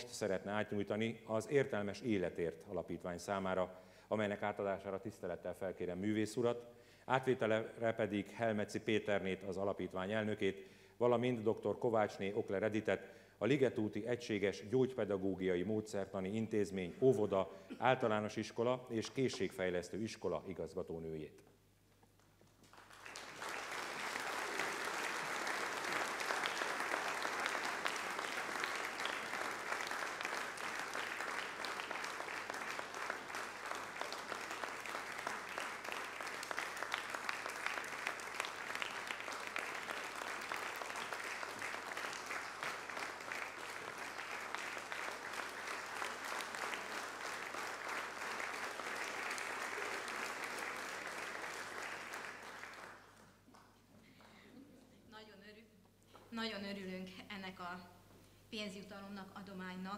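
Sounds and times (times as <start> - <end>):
audience applauding: 22.5 - 53.8.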